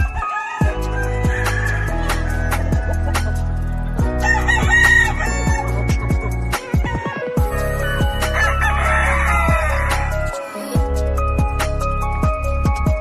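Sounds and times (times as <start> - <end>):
rooster crowing: 0.0 - 2.9, 4.2 - 5.8, 8.1 - 10.5
background music with steady beat: 0.0 - 13.0.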